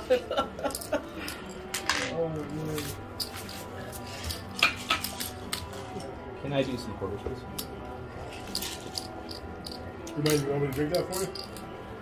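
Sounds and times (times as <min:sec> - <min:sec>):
faint background music: 0:00.0 - 0:12.0
casino chips clicking: 0:04.2 - 0:05.8, 0:07.6 - 0:11.7.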